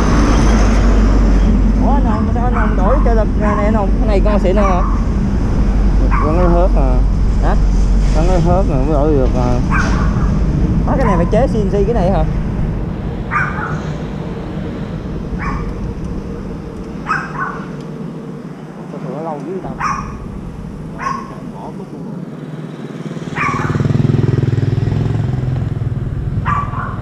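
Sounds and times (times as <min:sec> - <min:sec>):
engine hum: 0:00.0 - 0:27.0
dog barking: 0:02.5 - 0:03.6, 0:04.5 - 0:05.1, 0:06.0 - 0:06.5, 0:09.7 - 0:10.4, 0:13.3 - 0:13.9, 0:15.4 - 0:15.8, 0:17.0 - 0:17.8, 0:19.7 - 0:20.2, 0:21.0 - 0:21.8, 0:23.3 - 0:23.9, 0:26.4 - 0:27.0.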